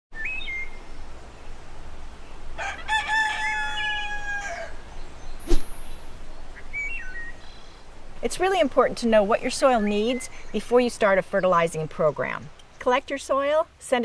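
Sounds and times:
rooster crowing: 0:02.6 - 0:04.9
steady hiss: 0:04.8 - 0:11.2.

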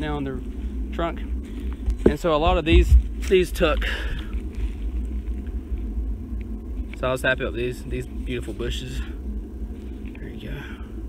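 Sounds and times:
low rumble on microphone: 0:00.0 - 0:11.0.

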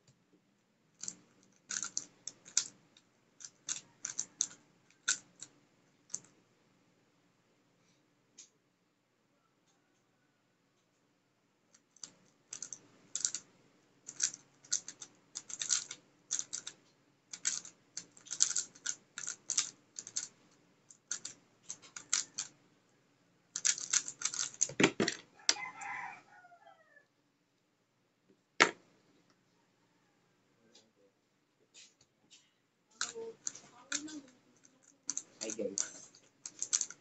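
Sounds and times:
puzzle cube turning clicks: 0:01.0 - 0:02.8, 0:03.4 - 0:06.3, 0:12.0 - 0:13.5, 0:14.1 - 0:22.6, 0:23.6 - 0:25.2, 0:33.0 - 0:37.0.

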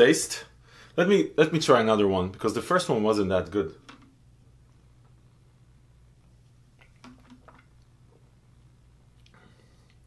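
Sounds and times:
low steady hum: 0:00.0 - 0:10.0
swallowing and mouth clicks: 0:06.7 - 0:08.0.

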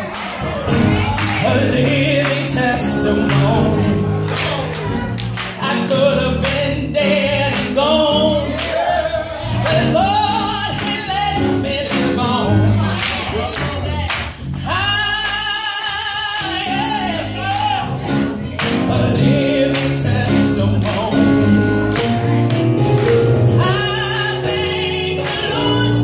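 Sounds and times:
gospel choir singing: 0:00.0 - 0:26.0.

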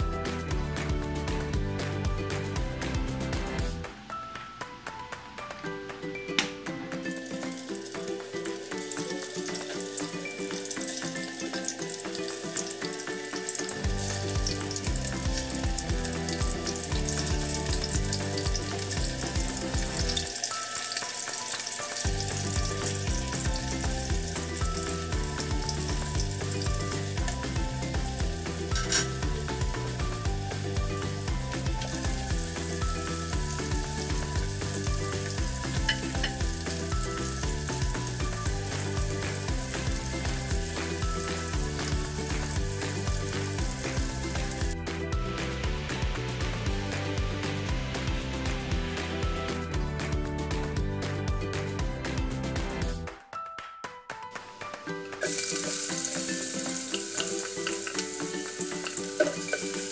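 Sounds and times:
background music: 0:00.0 - 0:59.9
chicken sizzling in hot oil: 0:07.0 - 0:44.8, 0:54.4 - 0:59.9.

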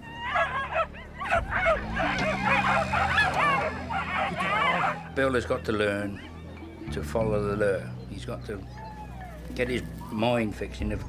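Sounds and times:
dogs yapping and whining: 0:00.0 - 0:06.8, 0:08.6 - 0:10.3.

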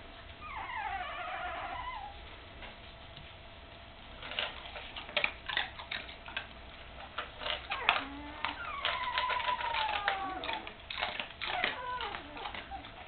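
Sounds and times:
puppy whimpering: 0:00.4 - 0:02.2, 0:07.5 - 0:13.0
dog crunching dry kibble: 0:04.1 - 0:13.0.

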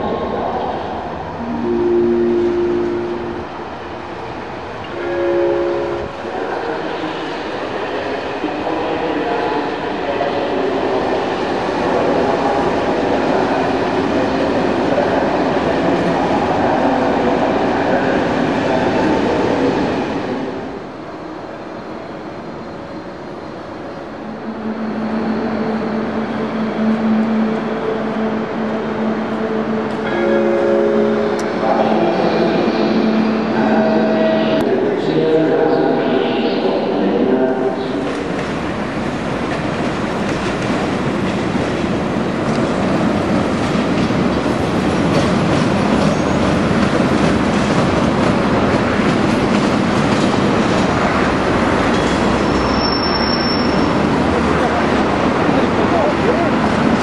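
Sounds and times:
train rolling on rails: 0:00.0 - 0:57.0
train horn blasts: 0:05.0 - 0:06.6, 0:29.0 - 0:34.7.

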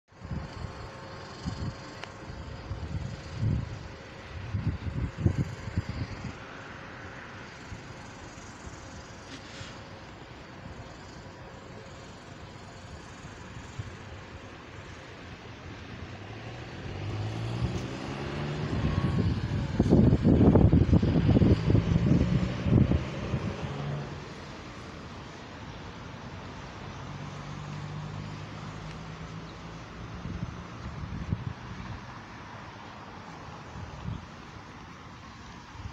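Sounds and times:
low rumbles: 0:14.4 - 0:25.9
vehicle engine accelerating: 0:14.8 - 0:34.3.

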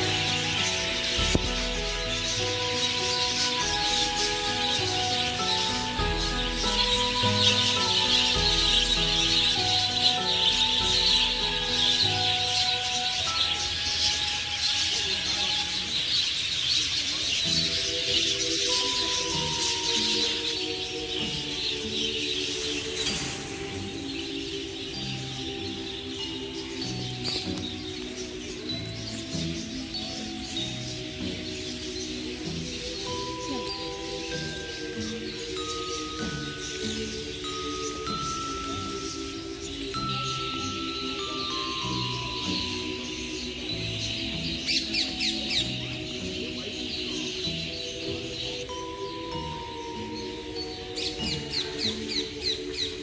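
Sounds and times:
background music melody: 0:00.0 - 0:53.0
budgerigar flock chattering: 0:00.0 - 0:53.0.

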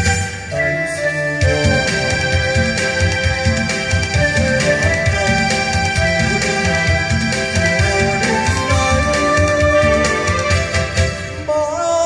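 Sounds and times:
keyboard melody: 0:00.0 - 0:12.0
steady bass beat: 0:01.4 - 0:11.2.

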